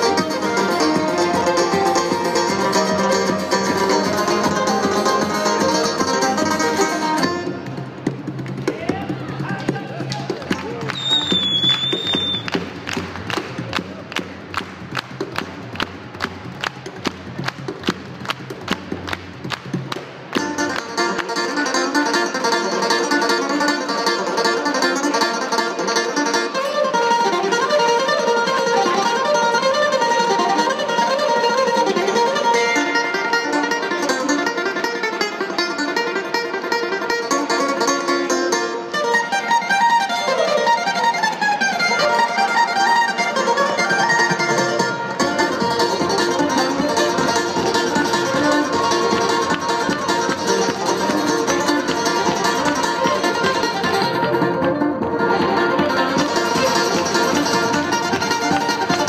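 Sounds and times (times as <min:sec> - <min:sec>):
frame drum beat: 0:00.0 - 0:21.1, 0:45.2 - 0:59.0
banjos guitar and mandolin: 0:00.0 - 0:59.0
hand claps: 0:10.0 - 0:21.8, 0:46.9 - 0:59.0
short high whistle: 0:10.9 - 0:12.6.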